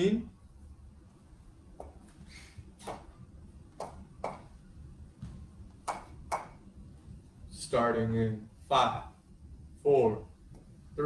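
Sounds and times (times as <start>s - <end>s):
low room hum: 0.0s - 11.0s.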